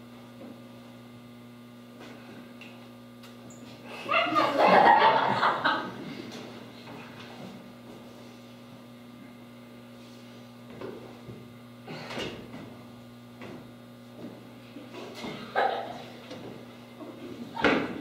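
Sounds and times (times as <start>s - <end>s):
steady low electrical hum: 0.0s - 18.0s.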